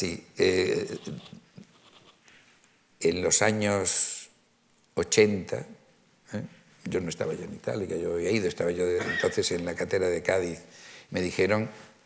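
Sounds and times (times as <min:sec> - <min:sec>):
faint breath: 0:10.7 - 0:11.1.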